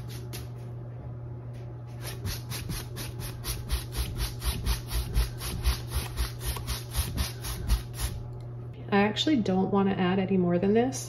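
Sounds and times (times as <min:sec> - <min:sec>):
steady low hum: 0:00.0 - 0:11.0
paintbrush scrubbing on canvas: 0:01.9 - 0:08.2.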